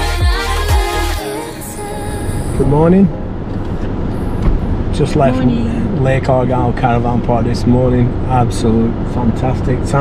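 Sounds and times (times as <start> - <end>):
car road and engine noise: 0.8 - 10.0
low bump: 3.2 - 6.2.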